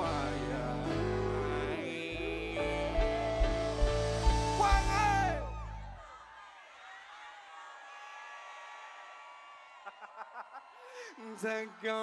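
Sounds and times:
person singing: 0.0s - 5.7s
live song with heavy bass: 0.0s - 6.0s
crowd singing along: 0.0s - 6.6s
crowd whooping: 2.9s - 12.0s.

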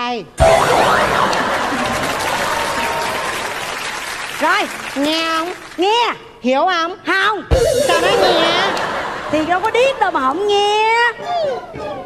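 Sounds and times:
crowd clapping: 0.9s - 5.9s.

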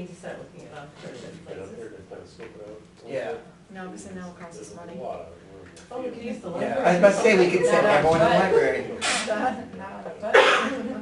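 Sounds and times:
loud vocal burst: 9.0s - 9.3s.

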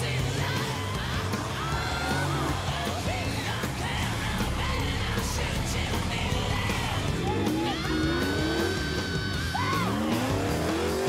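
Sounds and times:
engine revving hard: 0.0s - 11.0s
rock music: 0.0s - 11.0s.

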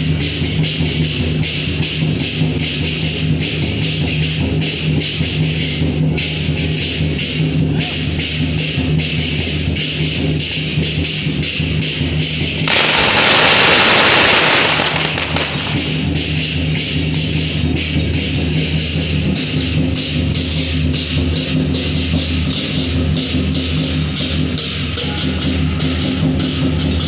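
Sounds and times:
firecrackers crackling: 12.6s - 17.0s.

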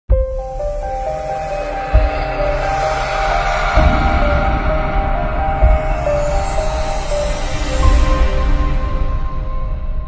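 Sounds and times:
deep bass hit: 1.9s - 7.1s.

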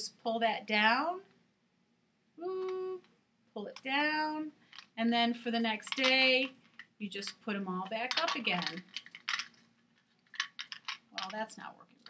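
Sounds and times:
beads clicking together: 5.8s - 11.6s.

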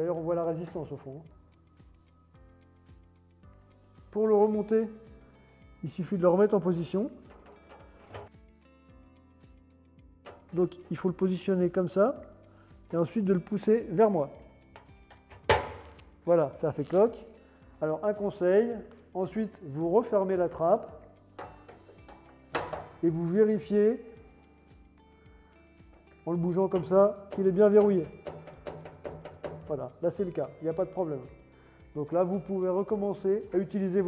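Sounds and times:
faint background music: 0.0s - 34.0s
metallic door latch snap: 10.3s - 10.6s, 14.8s - 16.1s, 21.4s - 23.0s
washing machine door click: 14.8s - 16.0s, 21.4s - 23.0s, 26.8s - 29.7s
plastic paddle knocking steel drum: 26.8s - 29.8s.

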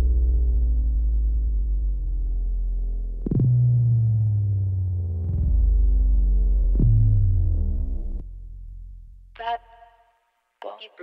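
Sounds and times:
bass note sliding down: 0.0s - 9.1s
deep sub-bass notes: 0.0s - 9.4s.

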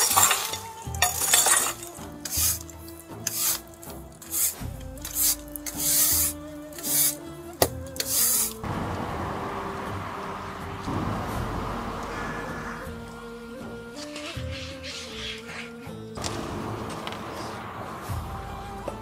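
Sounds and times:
broom sweeping on stone: 0.0s - 7.2s, 8.0s - 8.6s, 14.0s - 15.9s
metal rake scraping embers: 0.0s - 8.7s, 14.0s - 16.4s
quiet music: 0.0s - 19.0s.

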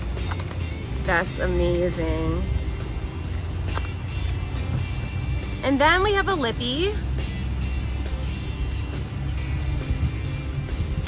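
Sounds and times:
quiet background music: 0.0s - 11.0s
faint handling clicks: 3.5s - 4.4s
wind rumbling on microphone: 6.5s - 11.0s.

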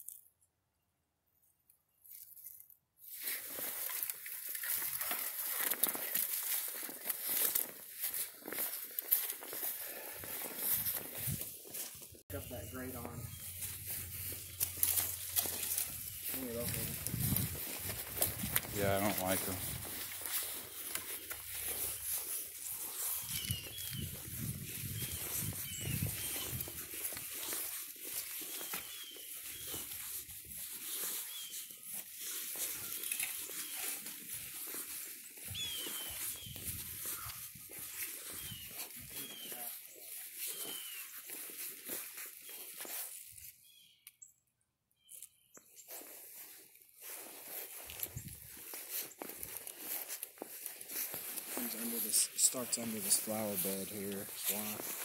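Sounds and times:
rustling on grass and leaves: 2.0s - 43.9s, 45.0s - 55.0s
footsteps on grass: 3.0s - 43.8s, 45.1s - 55.0s.

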